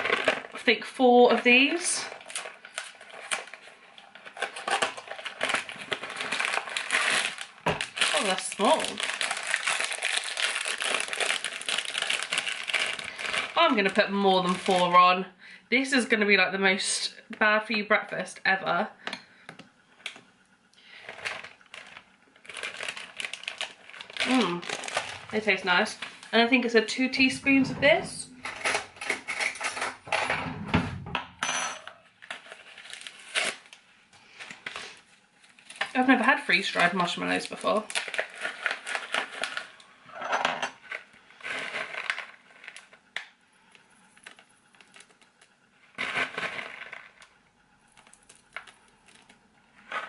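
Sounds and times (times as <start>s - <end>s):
plastic packet crinkling: 0.0s - 15.0s, 20.9s - 26.8s, 32.2s - 39.8s, 40.9s - 50.0s.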